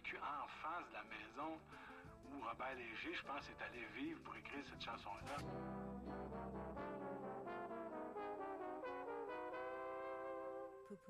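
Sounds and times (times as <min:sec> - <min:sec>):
low bass note: 0:05.4 - 0:08.6
brass instrument run: 0:05.4 - 0:11.0.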